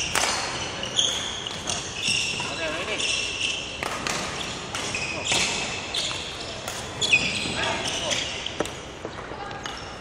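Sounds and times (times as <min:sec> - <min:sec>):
shoes squeaking on wooden floor: 0:00.7 - 0:03.7, 0:04.3 - 0:08.8.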